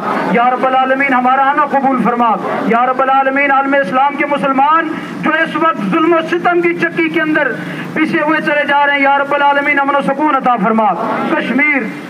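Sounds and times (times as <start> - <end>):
man praying over loudspeaker: 0.0 - 12.0.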